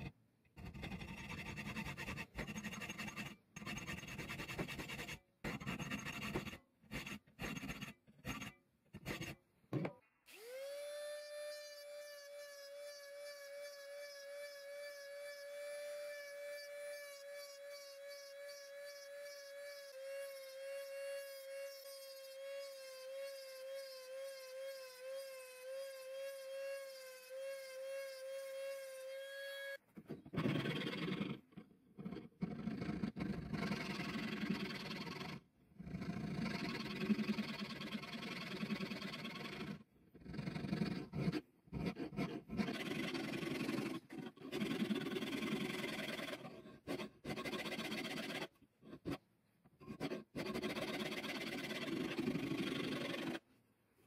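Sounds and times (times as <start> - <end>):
hand file scraping steel: 0.0 - 9.4, 10.3 - 35.0, 40.6 - 53.5
rotary tool grinding steel: 0.0 - 9.4, 10.3 - 35.4, 40.6 - 53.5.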